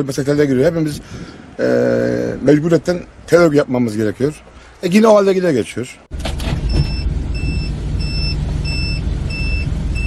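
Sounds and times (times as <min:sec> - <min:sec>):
vehicle warning beeper: 0:06.6 - 0:10.0.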